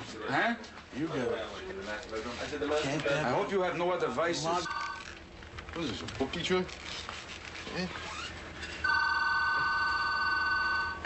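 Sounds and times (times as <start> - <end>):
telephone electronic warbling ring: 4.7 - 5.2, 8.8 - 11.0.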